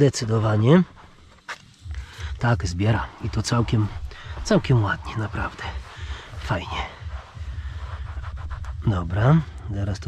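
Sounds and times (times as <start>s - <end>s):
steady low hum: 0.0s - 10.0s
towel rubbing on leather: 0.0s - 10.0s.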